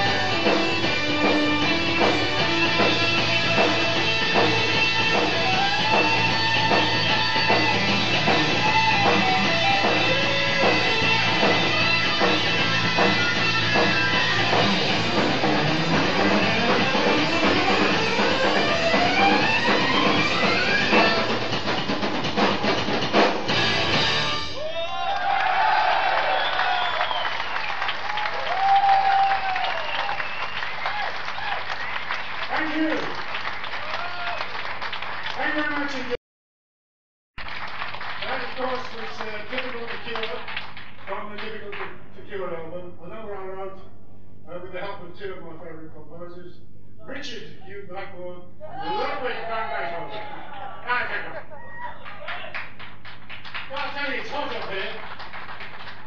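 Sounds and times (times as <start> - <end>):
live rock band playing: 0.0 - 24.6
crowd cheering and shouting: 24.4 - 31.9, 33.7 - 34.6, 48.6 - 52.6.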